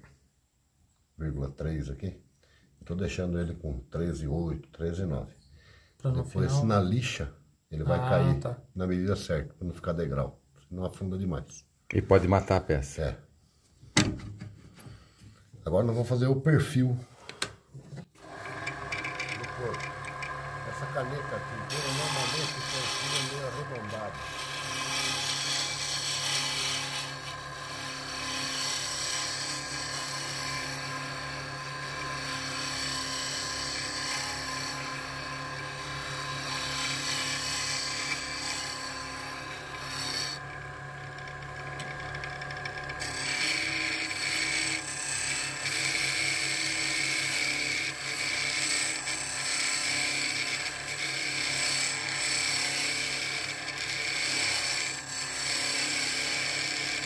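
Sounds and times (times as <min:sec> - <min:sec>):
gouge cutting wood hiss: 0:18.2 - 0:35.2
lathe motor hum: 0:18.2 - 0:57.0.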